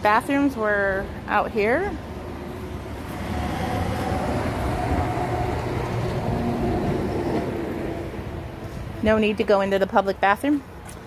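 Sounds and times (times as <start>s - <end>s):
low mechanical rumble: 0.6s - 9.2s.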